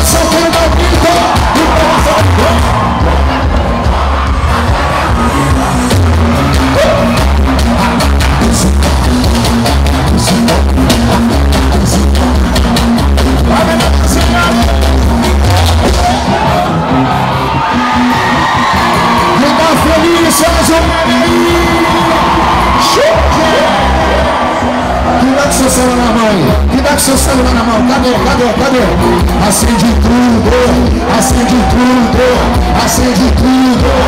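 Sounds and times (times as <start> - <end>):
live band music: 0.0 - 34.0
repeating bass line: 0.0 - 34.0.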